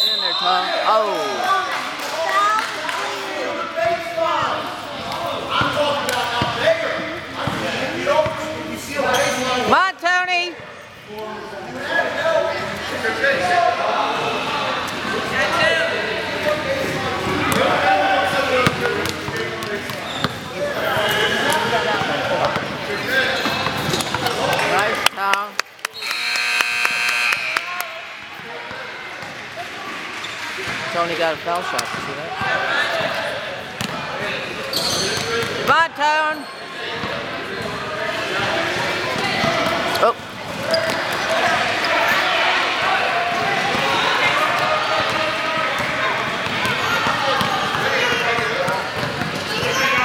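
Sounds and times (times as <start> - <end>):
shoe squeal: 9.0 - 9.7, 19.9 - 21.5, 22.9 - 24.2, 34.6 - 35.5, 36.4 - 36.8, 40.6 - 42.2
electric buzzer: 26.0 - 27.8.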